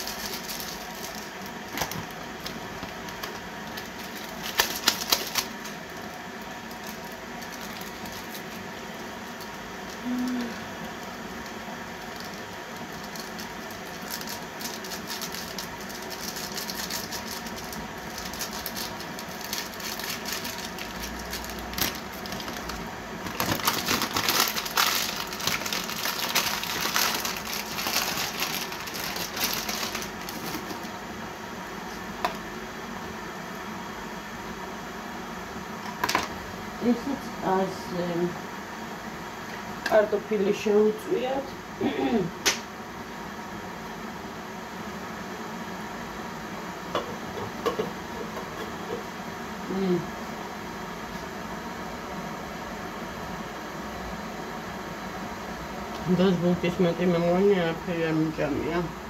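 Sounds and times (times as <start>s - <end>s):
small items clicking and rattling: 3.1s - 5.7s, 12.1s - 30.8s.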